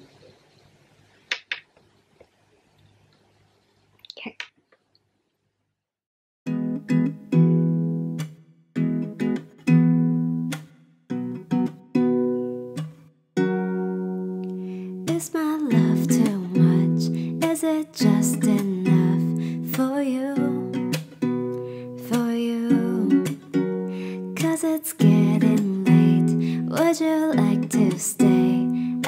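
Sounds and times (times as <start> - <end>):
acoustic guitar strumming chords: 6.5 - 29.0
woman singing: 15.0 - 21.0, 21.9 - 29.0.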